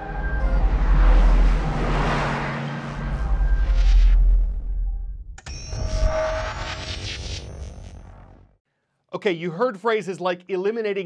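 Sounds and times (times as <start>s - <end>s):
deep rumble: 0.0s - 8.6s
whoosh: 0.1s - 7.8s.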